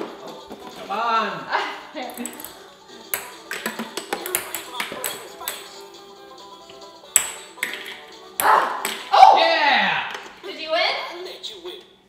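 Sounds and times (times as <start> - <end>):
faint music: 0.0 - 12.0
ping pong balls bouncing: 2.0 - 6.0, 7.1 - 9.4, 10.0 - 10.4
people exclaiming: 8.4 - 10.2.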